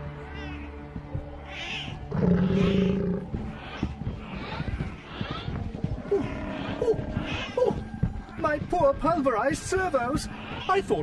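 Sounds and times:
low irregular thuds: 0:02.5 - 0:10.4.

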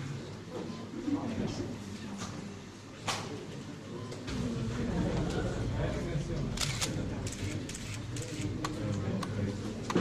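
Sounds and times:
murmur of voices: 0:00.0 - 0:10.0
camera shutters clicking: 0:06.6 - 0:08.6.

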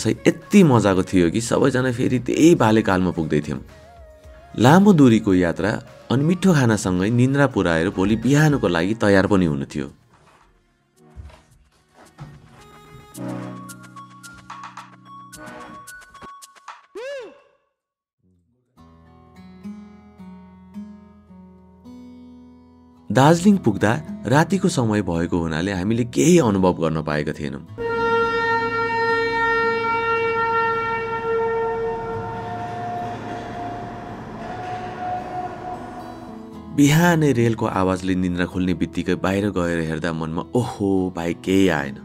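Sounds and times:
background music with plucked notes: 0:00.0 - 0:09.8, 0:11.0 - 0:16.7, 0:18.8 - 0:28.0, 0:36.2 - 0:42.0
train whistle blast: 0:27.8 - 0:36.7.

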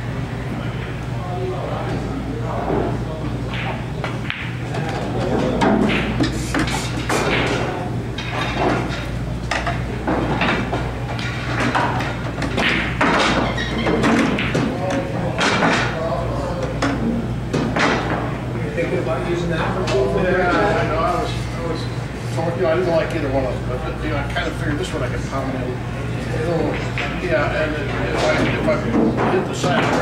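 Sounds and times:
steady low hum: 0:00.0 - 0:30.0
pool balls clacking: 0:02.5 - 0:16.0, 0:16.6 - 0:19.0, 0:26.5 - 0:30.0.

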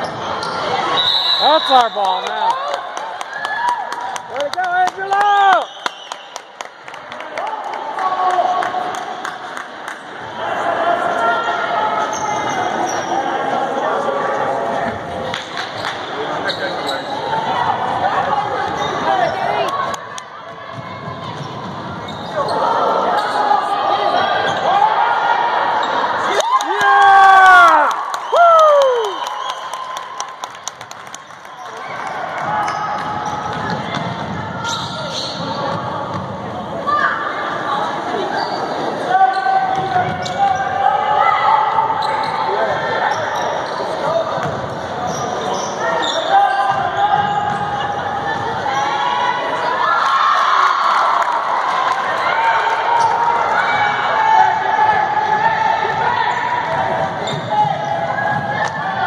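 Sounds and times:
shoe squeals: 0:00.0 - 0:02.1, 0:11.9 - 0:13.4, 0:15.8 - 0:17.5, 0:18.6 - 0:19.6, 0:21.2 - 0:24.8, 0:31.2 - 0:35.8, 0:38.2 - 0:40.9, 0:41.6 - 0:48.1, 0:56.2 - 0:58.3
spectators talking and calling out: 0:00.0 - 0:03.2, 0:31.6 - 0:59.0.

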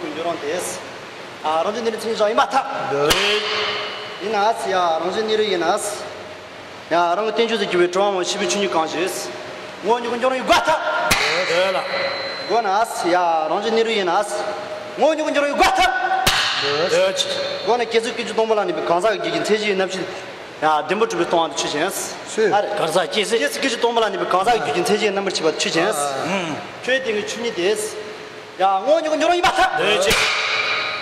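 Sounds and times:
man calling out: 0:15.0 - 0:16.2, 0:25.7 - 0:26.8, 0:28.8 - 0:30.2
man's loud voice: 0:15.0 - 0:16.2, 0:28.7 - 0:30.2.

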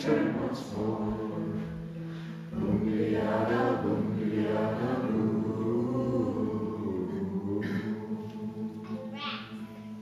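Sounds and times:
group singing in unison: 0:00.0 - 0:09.2
acoustic guitar: 0:00.0 - 0:10.0.

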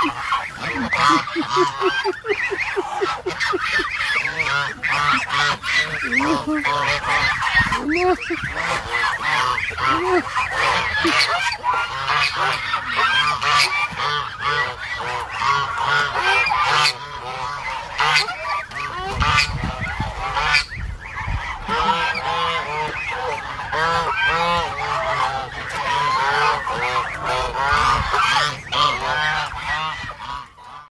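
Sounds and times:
ducks calling: 0:00.0 - 0:30.9.

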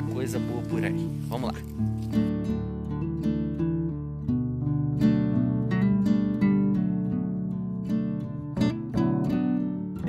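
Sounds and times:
acoustic guitar strumming chords: 0:00.0 - 0:10.0.

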